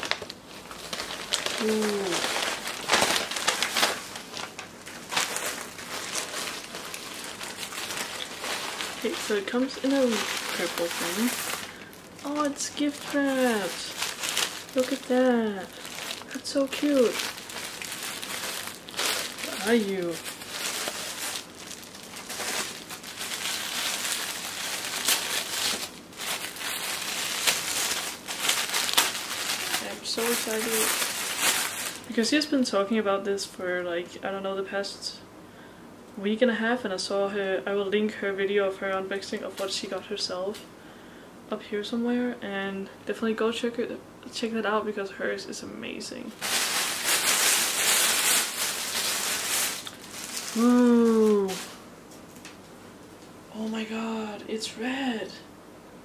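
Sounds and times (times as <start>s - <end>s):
tissue paper crinkling: 0.0s - 32.5s, 46.4s - 51.8s.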